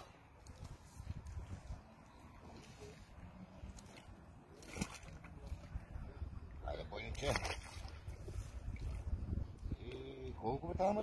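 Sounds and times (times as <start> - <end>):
water splashing: 0.0 - 6.2, 7.0 - 10.1
wind rumble on microphone: 0.3 - 2.2, 5.2 - 11.0.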